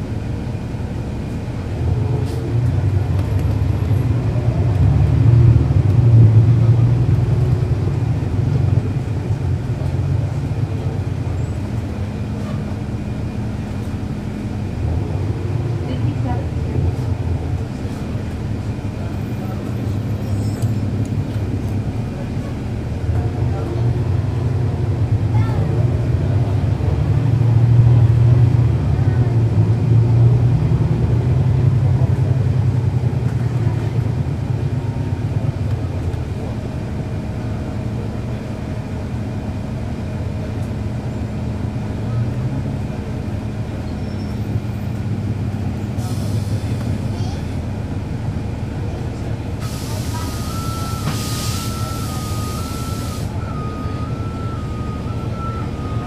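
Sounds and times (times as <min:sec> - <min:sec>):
bus diesel engine: 0:00.0 - 0:56.0.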